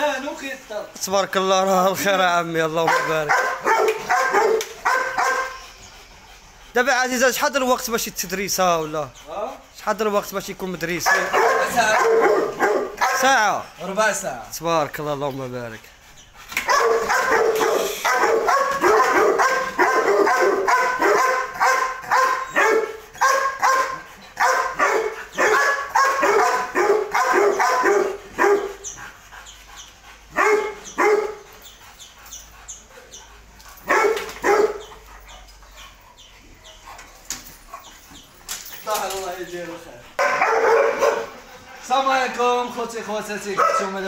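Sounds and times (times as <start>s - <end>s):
dog barking: 2.8s - 5.6s, 11.0s - 13.4s, 16.6s - 28.8s, 30.3s - 31.5s, 33.8s - 34.9s, 40.2s - 41.4s, 43.6s - 44.0s.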